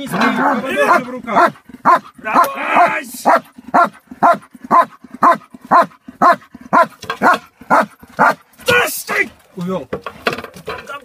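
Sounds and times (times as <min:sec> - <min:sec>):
dog barking: 0:00.4 - 0:08.4.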